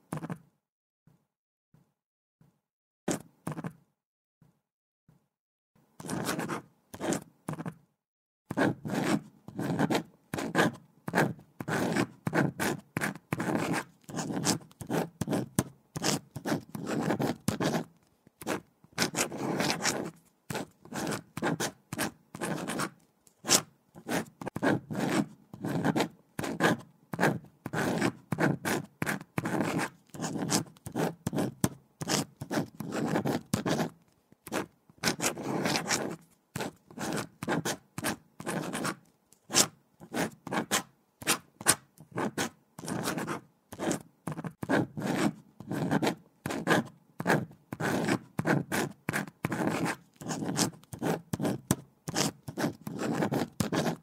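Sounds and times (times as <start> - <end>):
pen scratching on paper: 0.0 - 0.4, 3.1 - 3.8, 6.0 - 7.8, 8.5 - 54.0.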